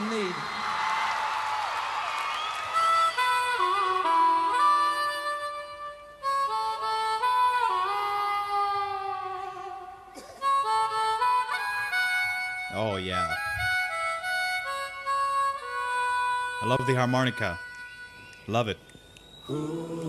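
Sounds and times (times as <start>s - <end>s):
harmonica solo: 2.6s - 20.0s.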